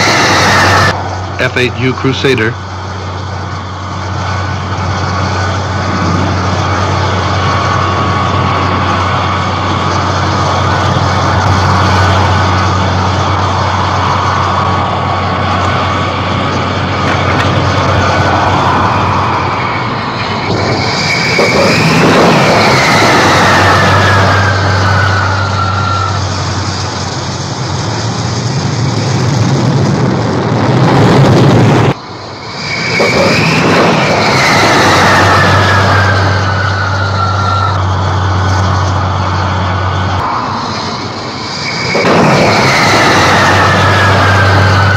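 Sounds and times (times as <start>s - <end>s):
falling jet whine: 0.0s - 44.9s
jet engines running at high power: 0.0s - 44.9s.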